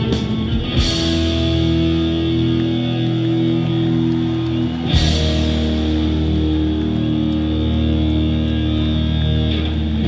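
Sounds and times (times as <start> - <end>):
rock band sustained chord: 0.0 - 10.0.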